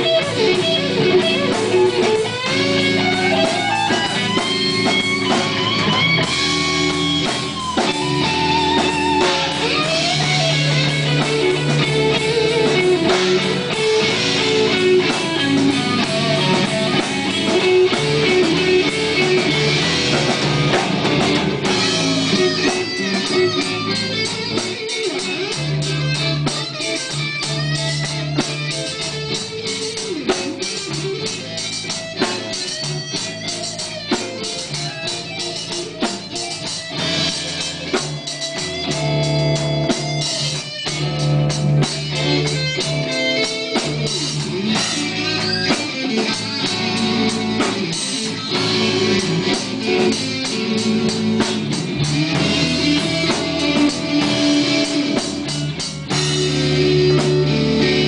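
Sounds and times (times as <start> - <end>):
drum kit: 0.0 - 58.0
electric guitar: 0.0 - 58.0.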